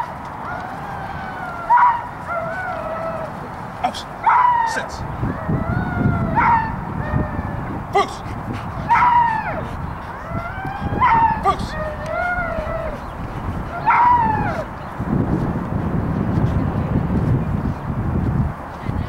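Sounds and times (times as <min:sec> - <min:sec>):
low rumble of wind: 0:00.0 - 0:19.0
dog whining yelps: 0:05.4 - 0:07.7, 0:08.9 - 0:13.1, 0:13.7 - 0:14.7.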